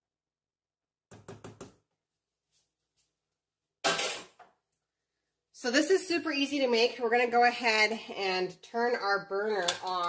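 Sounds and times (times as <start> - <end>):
kitchen item clunk: 3.8 - 4.5.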